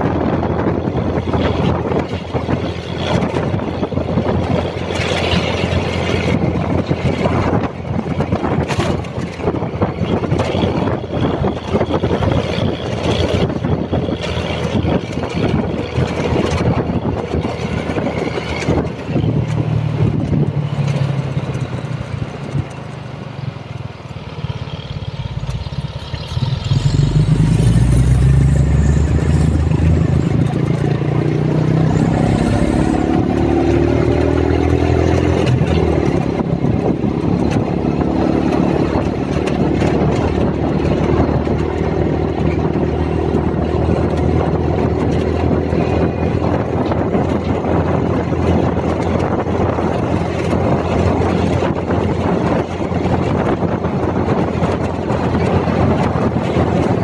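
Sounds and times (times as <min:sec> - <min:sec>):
motorcycle engine revving: 0:00.0 - 0:57.0
road noise: 0:00.0 - 0:57.0
wind buffeting microphone: 0:00.0 - 0:57.0.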